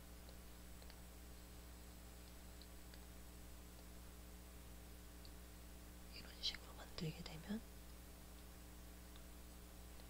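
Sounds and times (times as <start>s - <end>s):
faint steady hum: 0.0s - 10.0s
person whispering: 6.1s - 7.6s.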